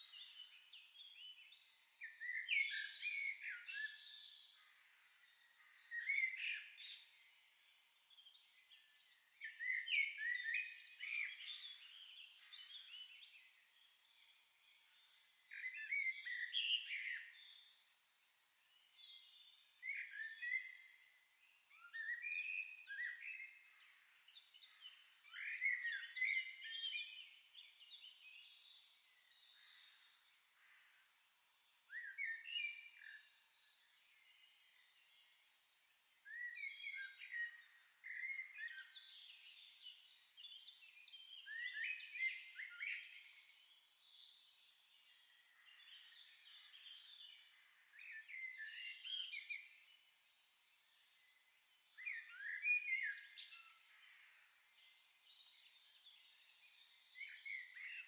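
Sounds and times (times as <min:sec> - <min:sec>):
songbirds chirping and singing: 0:00.0 - 0:58.0.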